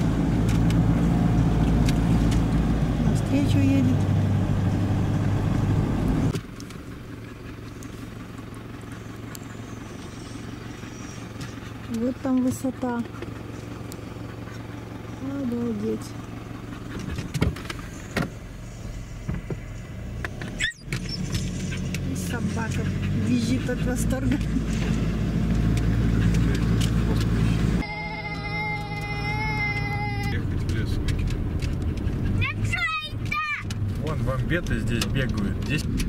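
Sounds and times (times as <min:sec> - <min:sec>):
car engine running: 0:00.0 - 0:36.0
sharp clicks and knocks: 0:29.8 - 0:32.2, 0:33.2 - 0:36.0.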